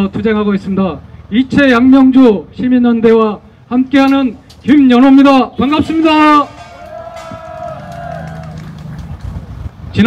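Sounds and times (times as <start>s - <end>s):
low traffic hum: 0.0s - 10.0s.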